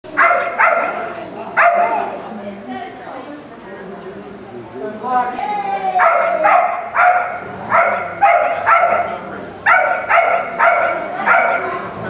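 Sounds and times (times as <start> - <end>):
dog barking in a hall: 0.1 - 2.2, 6.0 - 12.0.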